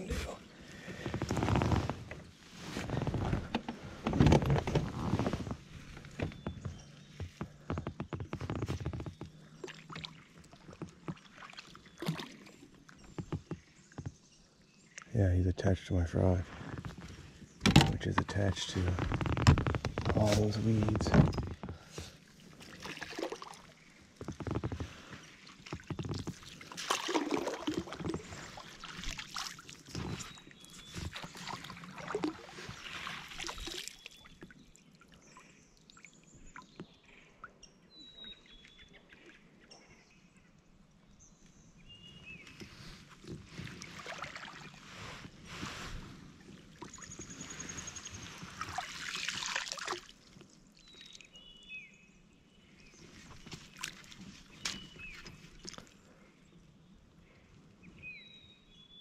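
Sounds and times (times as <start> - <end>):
water sloshing and splashing: 0.0 - 14.2, 16.4 - 37.0, 42.4 - 51.4, 53.0 - 56.1.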